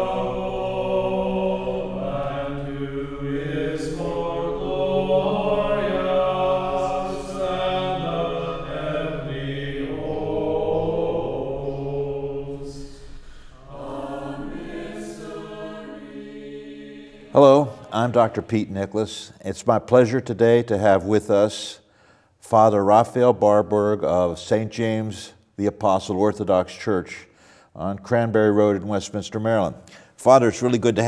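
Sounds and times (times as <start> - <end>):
choir singing a church chant: 0.0 - 18.8.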